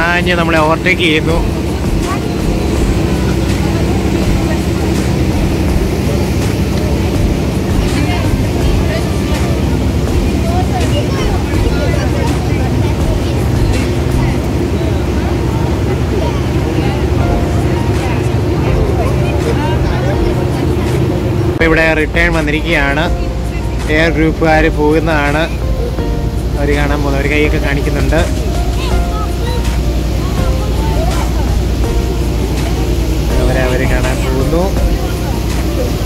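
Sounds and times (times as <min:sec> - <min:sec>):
boat engine drone: 0:00.0 - 0:36.0
faint passenger chatter: 0:00.0 - 0:36.0
rushing water: 0:00.0 - 0:36.0.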